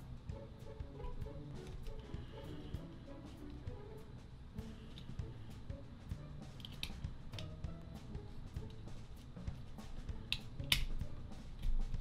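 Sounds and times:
quiet background music: 0.0 - 12.0
plastic toy parts clicking: 6.6 - 7.5, 10.3 - 10.9.

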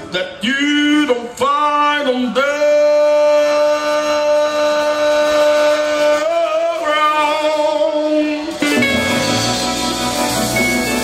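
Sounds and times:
blues-rock band holding a note: 8.3 - 11.0.

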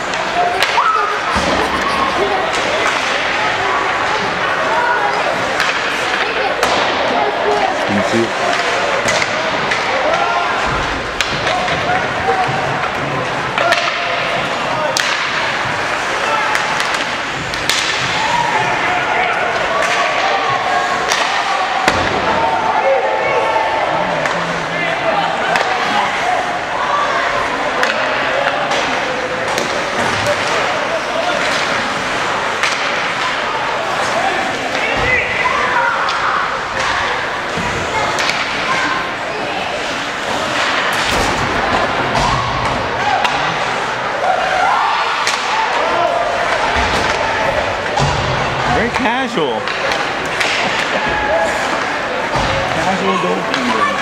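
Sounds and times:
puck and sticks hitting boards: 0.0 - 4.6, 5.4 - 7.2, 8.4 - 22.5, 25.4 - 26.0, 27.8 - 39.1, 39.8 - 43.7, 45.0 - 54.0.

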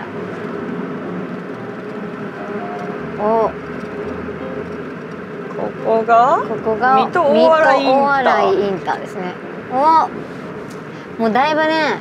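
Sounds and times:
car road and engine noise: 0.0 - 12.0
faint steady hum: 0.0 - 12.0.

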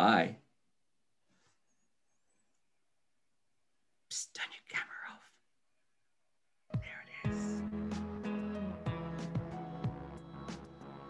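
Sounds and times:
person whispering: 4.1 - 5.4, 6.8 - 7.7.

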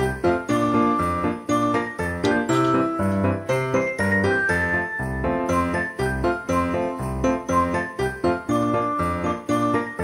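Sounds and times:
festive tune with jingling bells: 0.0 - 10.0.

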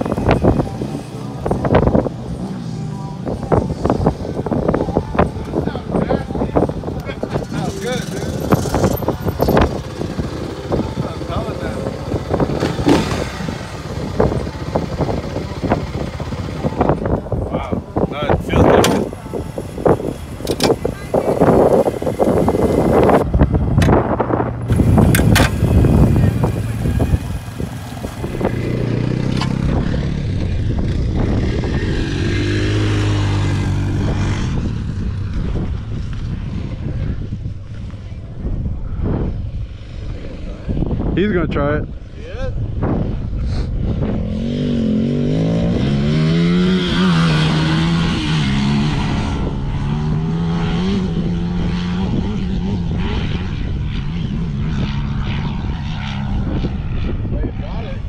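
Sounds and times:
small off-road engines running: 0.0 - 38.4
quad engine revving: 7.4 - 17.0, 18.5 - 35.0, 43.4 - 56.6.

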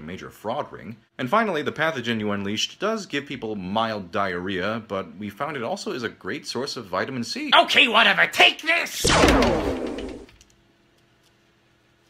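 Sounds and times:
cartoon blast sweeping down: 9.0 - 10.3.

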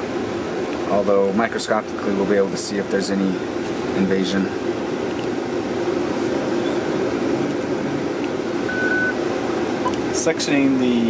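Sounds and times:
ventilation system humming: 0.0 - 11.0
brief beep: 8.7 - 9.2.

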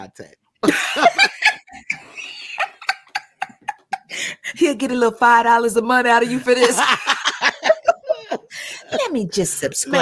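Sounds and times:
women laughing: 0.6 - 4.4, 6.5 - 10.0.

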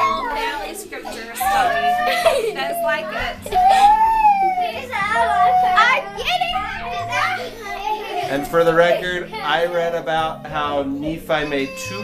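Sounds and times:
young children talking: 0.0 - 10.2, 11.3 - 12.0.

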